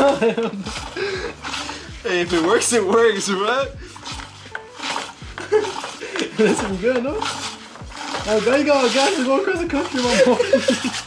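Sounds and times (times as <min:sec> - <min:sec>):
men laughing: 0:00.0 - 0:03.0, 0:05.0 - 0:07.3, 0:08.4 - 0:11.0.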